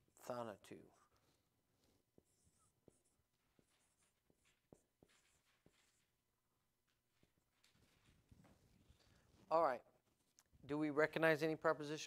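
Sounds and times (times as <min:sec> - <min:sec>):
marker squeaking on whiteboard: 0:00.4 - 0:10.6.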